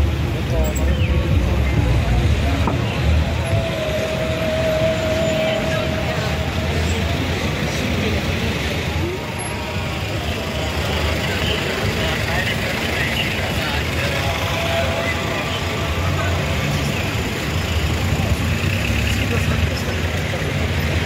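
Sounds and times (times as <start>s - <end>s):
cars passing on street: 0.0s - 21.0s
indistinct background voices: 0.2s - 21.0s.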